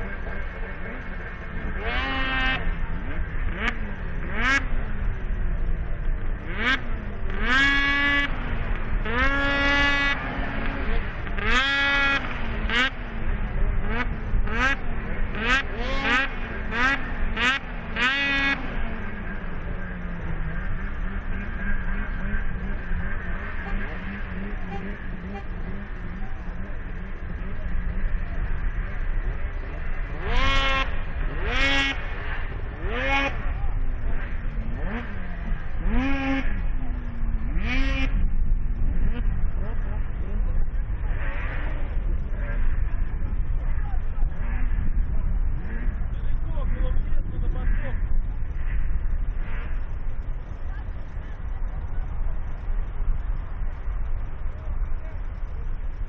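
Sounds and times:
snowmobile engines revving: 0.0 - 56.0.

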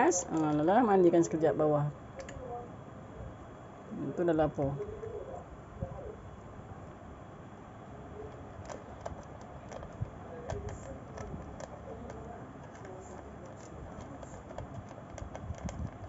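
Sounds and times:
cat crunching dry kibble: 8.3 - 16.0.

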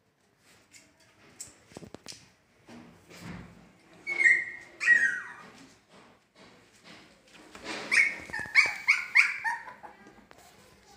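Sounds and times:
puppies whimpering and yelping: 4.0 - 5.6, 7.9 - 10.0.

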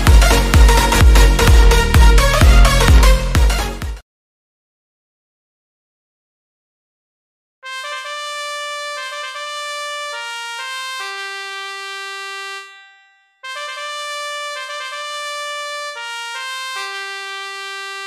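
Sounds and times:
synthesized trumpet melody: 0.0 - 4.0, 7.6 - 18.0.

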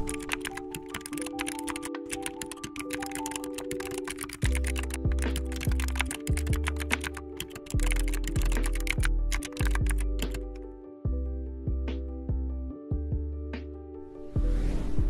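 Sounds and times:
rapid keyboard typing: 0.0 - 10.6
background music with deep bass: 3.0 - 15.0.

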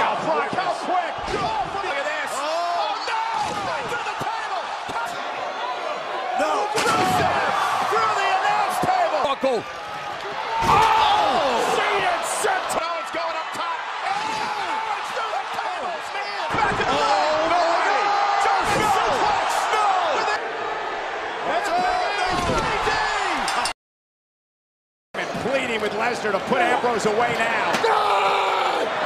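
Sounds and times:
people yelling: 0.0 - 23.7, 26.4 - 29.0.

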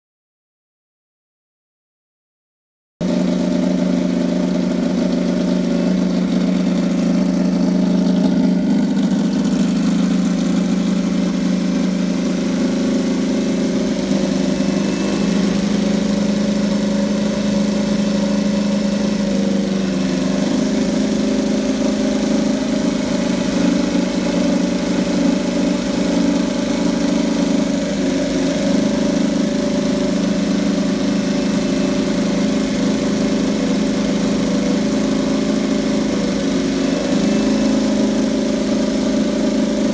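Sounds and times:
motorcycle engine idling: 3.0 - 39.9.

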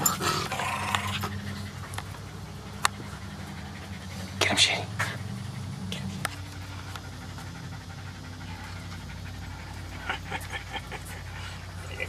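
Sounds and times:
dog panting: 0.0 - 12.0
steady low hum: 0.0 - 12.0.

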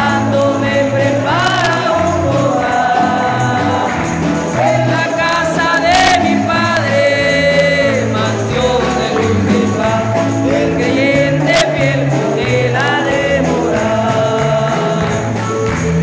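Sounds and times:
congregation singing gospel hymn: 0.0 - 16.0
hand clapping: 0.0 - 16.0
jingling percussion: 0.0 - 16.0.

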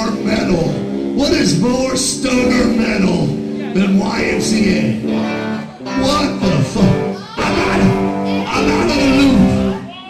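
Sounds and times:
strummed guitar with bending notes: 0.0 - 9.9
live band music: 0.0 - 10.0.

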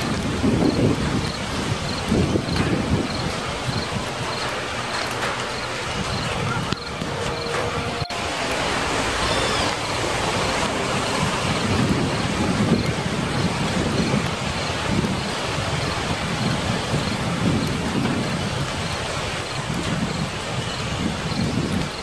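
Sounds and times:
low rolling rumbles: 0.0 - 22.0
rain hiss: 0.0 - 22.0.

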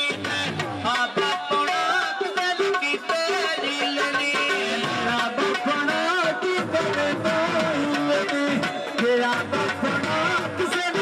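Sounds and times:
steady percussion rhythm: 0.0 - 11.0.

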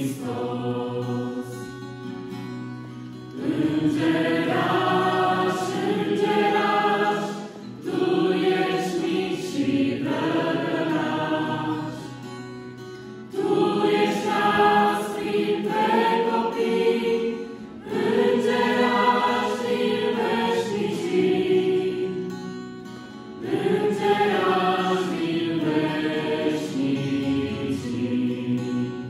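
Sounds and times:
choir singing a hymn: 0.0 - 2.5, 3.3 - 29.0
acoustic guitar: 0.0 - 29.0.

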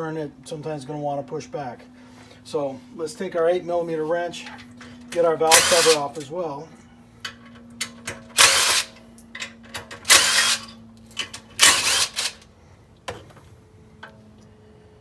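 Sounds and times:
power driver whirring: 5.4 - 6.1, 8.3 - 9.0, 9.9 - 12.5.

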